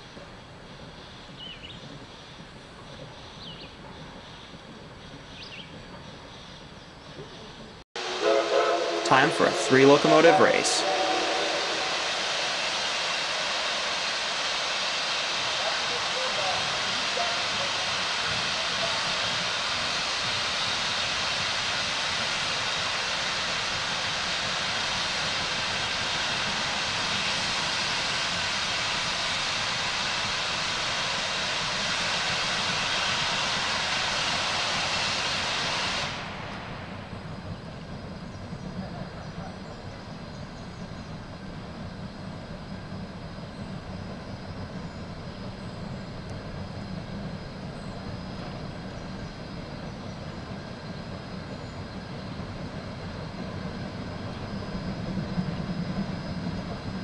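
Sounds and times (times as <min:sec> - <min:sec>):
locomotive engines rumbling: 0:00.0 - 0:57.0
steam venting hiss: 0:00.0 - 0:57.0.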